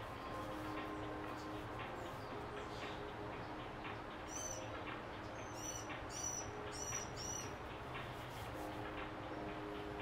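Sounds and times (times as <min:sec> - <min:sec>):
small bird chirping: 0:05.4 - 0:07.6.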